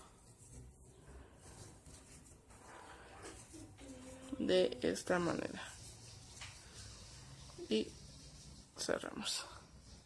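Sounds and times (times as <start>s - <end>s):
yarn rustling with crochet hook: 0.0s - 10.0s.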